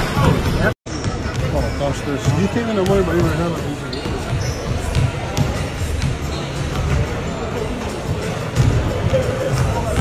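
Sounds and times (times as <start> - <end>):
spectators chatting: 0.0 - 10.0
basketballs bouncing on hardwood: 4.3 - 7.1.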